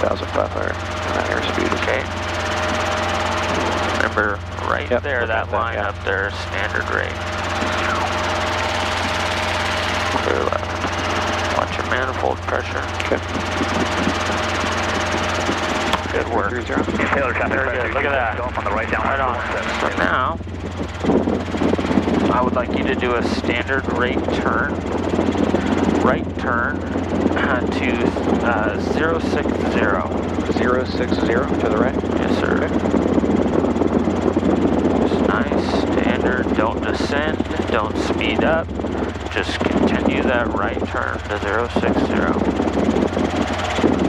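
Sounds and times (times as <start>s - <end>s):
helicopter engine and rotor drone: 0.0s - 44.0s.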